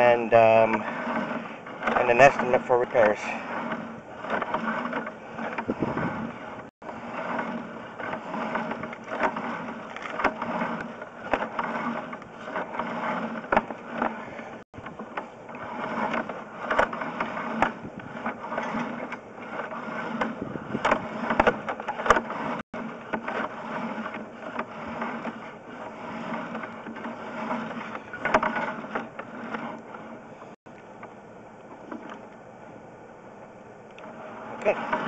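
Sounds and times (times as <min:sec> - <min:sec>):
cable rattling and scraping in pipe: 0:00.0 - 0:32.4, 0:33.9 - 0:35.0.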